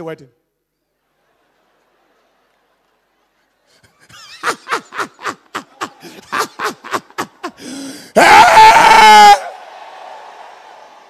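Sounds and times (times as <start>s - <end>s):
man shouting into microphone: 8.1s - 9.5s.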